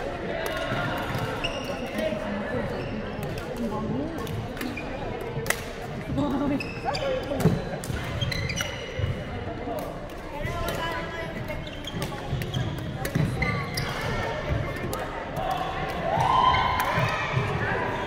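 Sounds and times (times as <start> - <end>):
shoe squeaks: 1.4 - 2.0, 6.4 - 9.1, 11.0 - 14.4.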